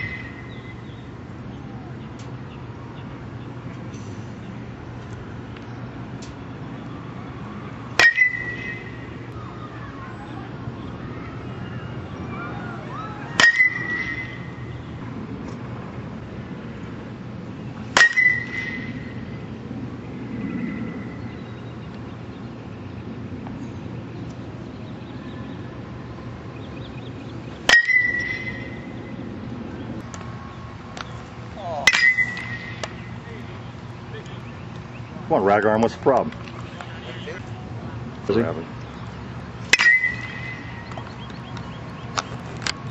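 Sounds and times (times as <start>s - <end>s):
metal bat pinging on ball: 8.0s - 8.9s, 13.4s - 14.4s, 18.0s - 19.1s, 27.7s - 28.9s, 31.8s - 33.0s, 39.7s - 41.4s.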